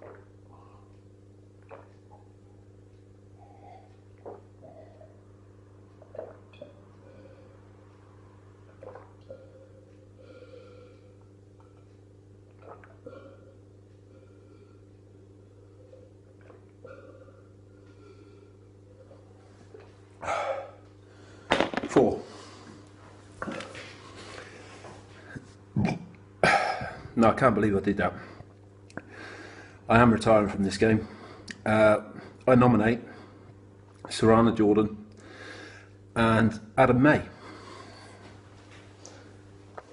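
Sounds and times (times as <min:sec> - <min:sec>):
person swallowing: 0:00.0 - 0:00.7, 0:01.6 - 0:02.4, 0:03.4 - 0:05.2, 0:06.0 - 0:06.9, 0:08.7 - 0:09.8, 0:12.5 - 0:13.6, 0:16.3 - 0:17.5, 0:23.4 - 0:24.5, 0:25.3 - 0:27.1
steady low hum: 0:00.0 - 0:39.9.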